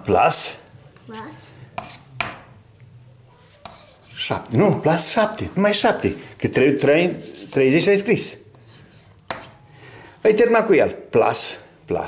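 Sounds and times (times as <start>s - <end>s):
chalk tapping on blackboard: 1.8s - 2.5s, 3.4s - 4.5s, 7.2s - 7.9s, 8.5s - 9.6s.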